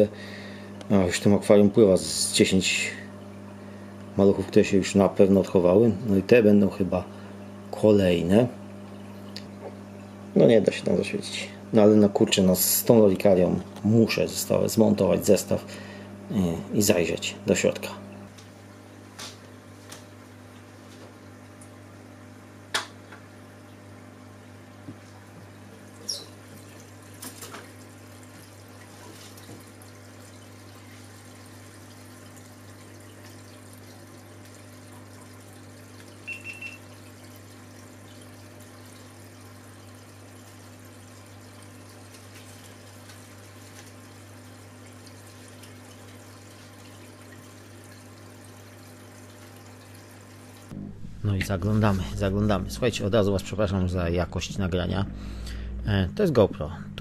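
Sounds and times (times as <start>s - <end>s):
aquarium water trickling: 0.0s - 50.8s
filter pump hum: 0.0s - 57.0s
short high beep: 36.3s - 36.8s.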